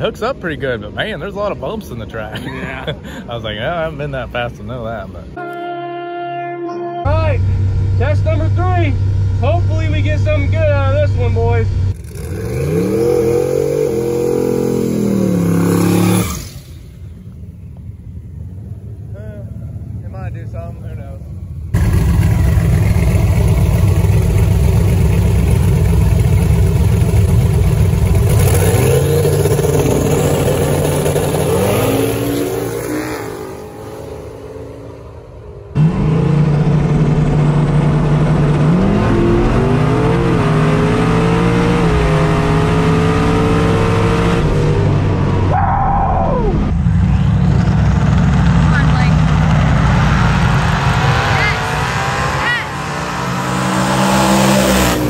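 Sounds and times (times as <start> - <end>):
drag car engine at full throttle: 7.4 - 17.9, 21.5 - 55.0.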